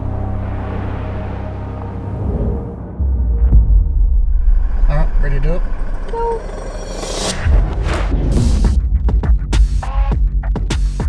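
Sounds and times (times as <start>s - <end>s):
electronic music with throbbing bass: 3.5s - 11.0s.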